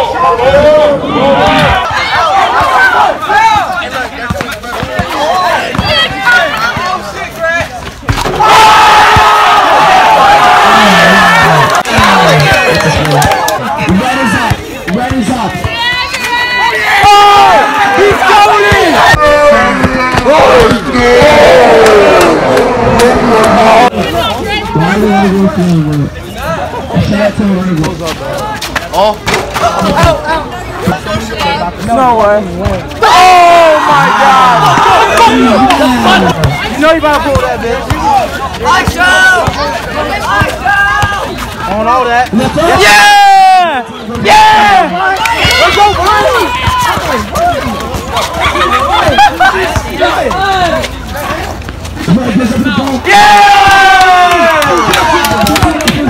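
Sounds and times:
young voices shouting and whooping: 0:00.0 - 0:04.0, 0:08.3 - 0:11.9, 0:15.7 - 0:25.3, 0:33.0 - 0:36.9, 0:38.0 - 0:41.5, 0:42.4 - 0:51.3, 0:52.0 - 0:56.0
people talking and calling out: 0:00.0 - 0:56.0
crowd screaming: 0:08.2 - 0:14.5, 0:15.7 - 0:23.9, 0:33.0 - 0:36.5, 0:42.4 - 0:50.9, 0:53.0 - 0:56.0.

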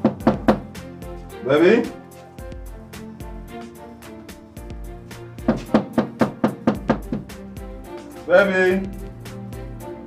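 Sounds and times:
knocking on a door: 0:00.0 - 0:00.7, 0:05.4 - 0:07.4.

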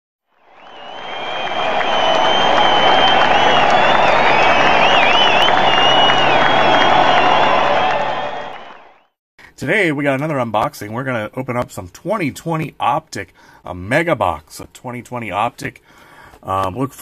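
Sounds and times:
crowd cheering and applauding: 0:00.4 - 0:09.2
shrill whistles: 0:00.4 - 0:09.2.

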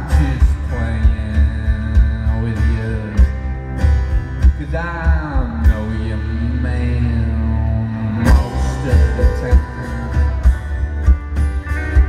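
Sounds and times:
drums keeping a steady beat: 0:00.0 - 0:07.2, 0:08.2 - 0:12.0
electric guitar: 0:00.0 - 0:12.0
strummed acoustic guitar: 0:00.0 - 0:12.0.

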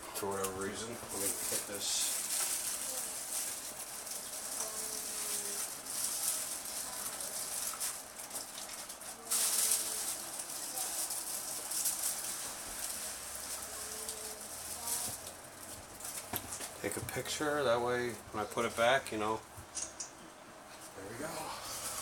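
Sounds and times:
packaging rustling and scraping: 0:00.6 - 0:17.2.

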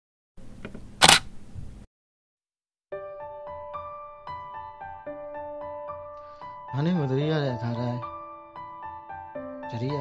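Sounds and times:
sharp loud click-snap: 0:01.0 - 0:01.3.

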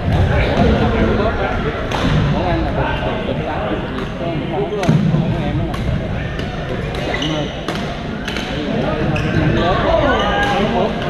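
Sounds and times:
voices in a sports hall: 0:00.0 - 0:11.0
rackets hitting shuttlecock: 0:05.7 - 0:08.7.

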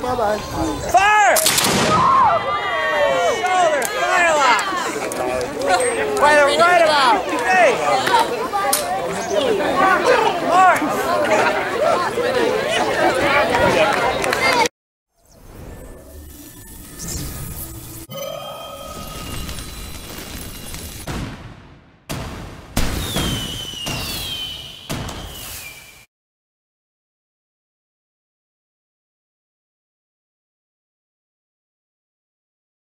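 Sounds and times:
musket shots: 0:01.4 - 0:02.0
people chattering: 0:02.0 - 0:14.7
high whistle sliding down: 0:23.0 - 0:26.1.

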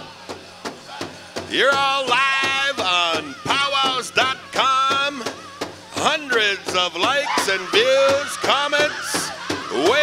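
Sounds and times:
steady beat on large drum: 0:00.0 - 0:10.0
high-pitched group singing: 0:01.5 - 0:10.0.

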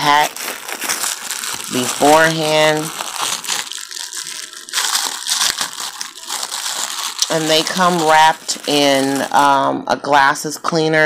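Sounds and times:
plastic packaging crinkling: 0:00.0 - 0:09.6.

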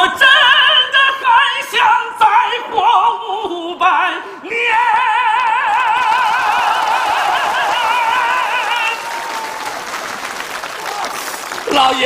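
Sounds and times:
audience applause: 0:05.4 - 0:12.0.

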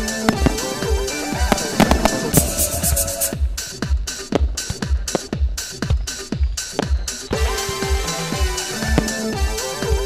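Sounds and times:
fireworks bursting and crackling: 0:00.0 - 0:10.0
electronic dance music: 0:00.6 - 0:04.1, 0:07.4 - 0:10.0.

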